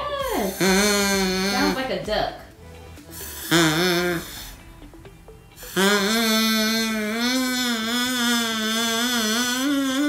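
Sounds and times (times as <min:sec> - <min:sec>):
straw oboe reedy note: 0:00.2 - 0:02.1, 0:03.1 - 0:04.7, 0:05.6 - 0:10.0.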